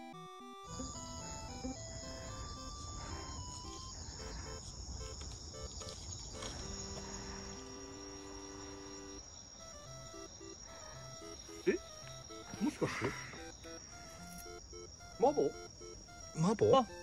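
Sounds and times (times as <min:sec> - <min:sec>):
soft background music: 0:00.0 - 0:17.0
night insects trilling: 0:00.6 - 0:17.0.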